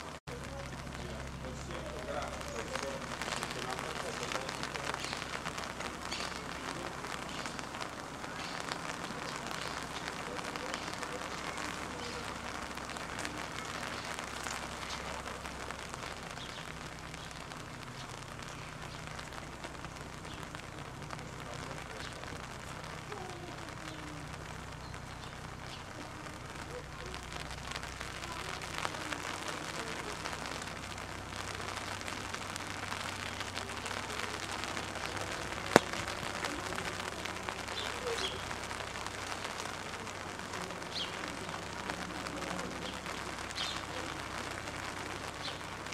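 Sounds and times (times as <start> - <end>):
steady rain falling: 0.0 - 45.9.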